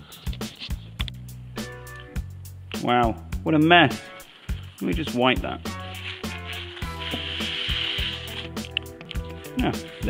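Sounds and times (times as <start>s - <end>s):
background music with steady beat: 0.0s - 10.0s
cloth rubbing on steel plate: 4.2s - 8.6s.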